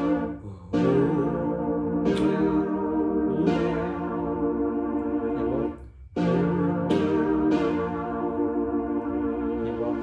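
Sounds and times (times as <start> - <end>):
keyboard playing held chords: 0.0 - 10.0.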